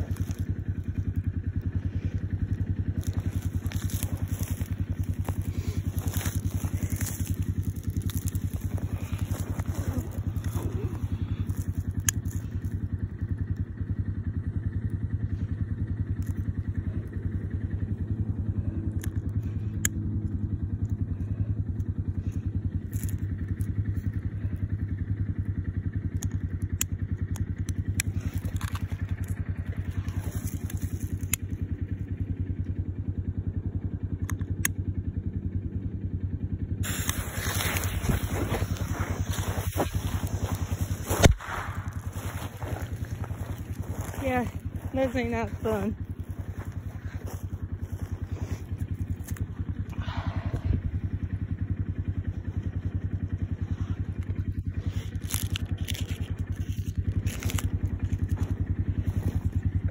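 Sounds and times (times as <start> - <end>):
engine idling: 0.0 - 59.9.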